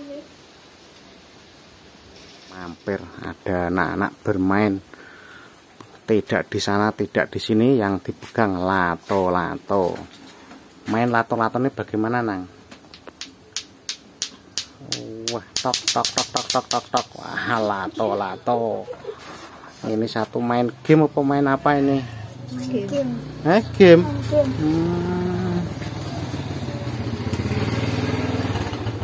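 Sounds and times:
plastic balls clacking together: 12.9 - 17.3
motorcycle engine running: 23.0 - 29.0.

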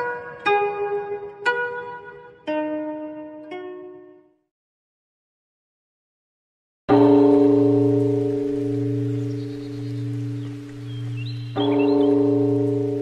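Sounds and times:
temple bell ringing: 6.9 - 13.0.

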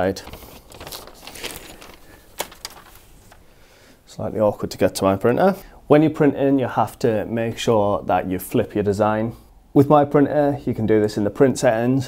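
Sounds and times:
paper handling noise: 0.0 - 3.5.

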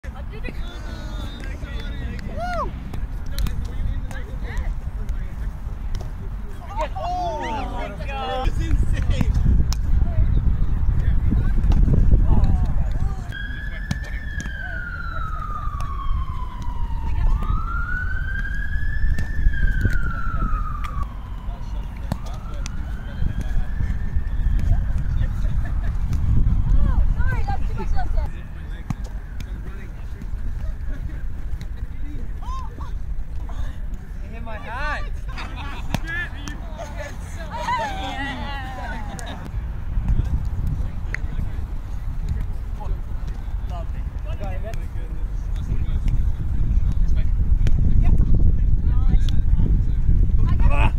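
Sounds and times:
players moving on grass: 0.3 - 10.0, 18.4 - 48.4
wind on microphone: 8.4 - 13.4, 15.8 - 21.4, 22.8 - 28.4, 39.2 - 42.4, 45.2 - 50.9
siren wailing: 13.3 - 25.2.

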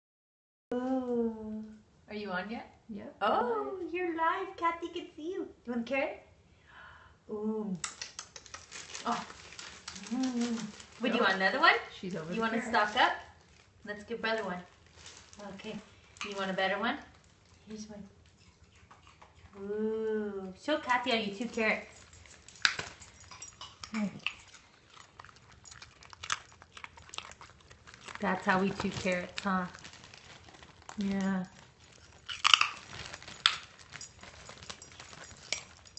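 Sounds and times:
dog crunching carrot: 7.8 - 13.8, 14.4 - 19.7, 20.8 - 35.9.

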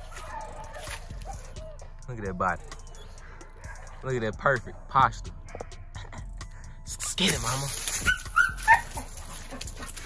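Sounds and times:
puppy yipping: 0.0 - 3.9, 7.4 - 10.0.

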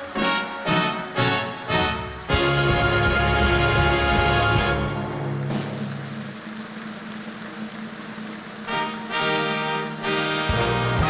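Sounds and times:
orchestral music with brass: 0.0 - 6.3, 8.6 - 11.0
audience applauding: 0.1 - 11.0.

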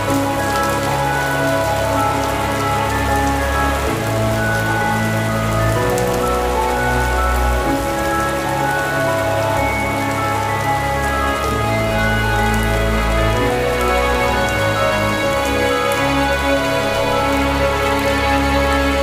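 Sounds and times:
slow classical-style music: 0.0 - 19.0
steady rain falling: 0.0 - 19.0.

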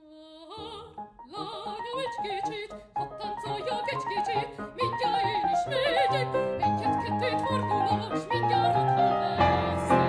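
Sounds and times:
woman singing opera: 0.0 - 10.0
grand piano: 0.5 - 10.0.

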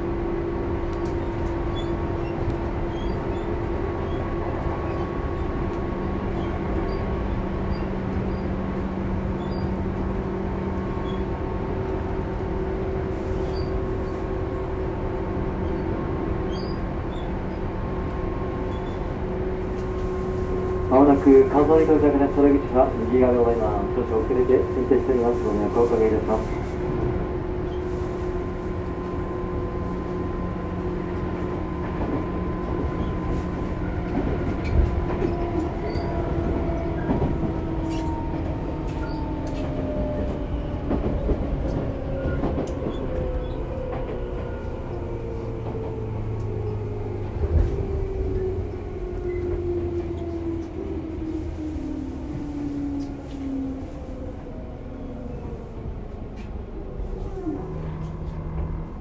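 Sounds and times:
wheels rumbling on rails: 0.0 - 59.0.

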